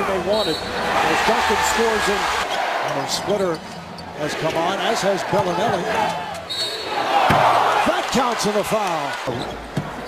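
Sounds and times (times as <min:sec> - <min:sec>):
referee whistle: 0:00.4 - 0:00.8, 0:06.5 - 0:06.8
crowd cheering: 0:00.8 - 0:03.1, 0:04.4 - 0:09.3.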